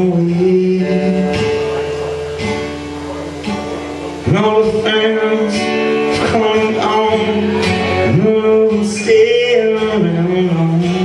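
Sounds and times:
acoustic guitar strummed chords: 0.0s - 11.0s.

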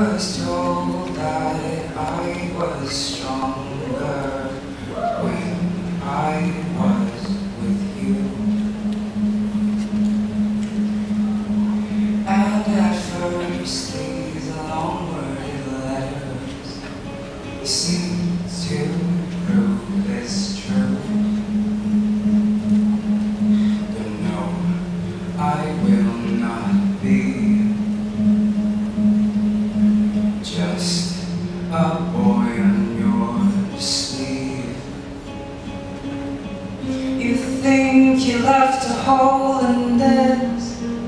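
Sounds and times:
acoustic guitar low note: 0.0s - 41.0s.

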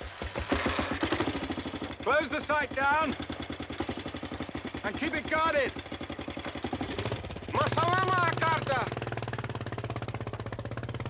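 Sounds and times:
motorcycle engine starting and running: 0.0s - 11.0s.

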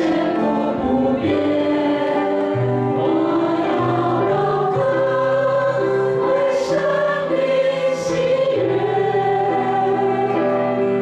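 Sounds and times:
group singing a hymn: 0.0s - 11.0s
piano: 0.0s - 11.0s.

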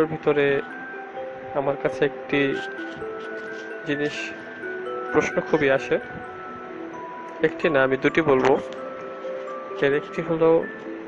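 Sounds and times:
music of sustained notes: 0.0s - 11.0s.

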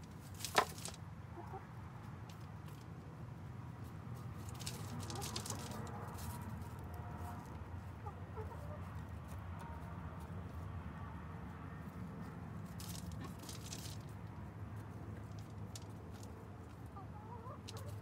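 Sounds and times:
scratching and pecking in dirt: 0.0s - 18.0s
hens clucking: 0.6s - 2.9s, 4.3s - 10.7s, 11.7s - 18.0s.

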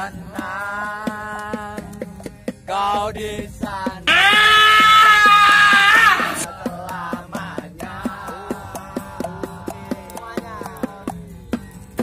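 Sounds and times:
man singing a loud high note: 4.0s - 6.5s.

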